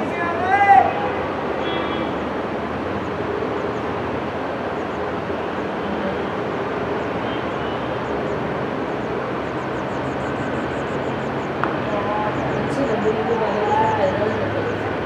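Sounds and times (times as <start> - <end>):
outdoor hiss and rumble: 0.0 - 15.0.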